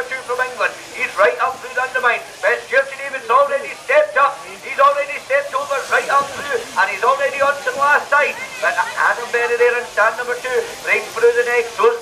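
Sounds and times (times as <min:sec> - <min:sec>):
commentator talking fast: 0:00.0 - 0:12.0.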